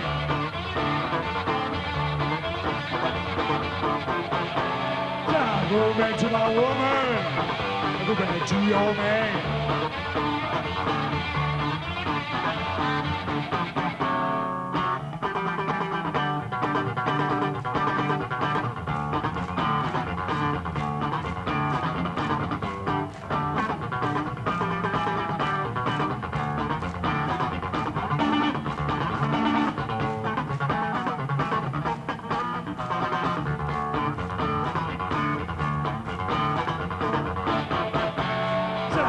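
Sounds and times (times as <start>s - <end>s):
electric bass guitar plucked: 0.0s - 39.0s.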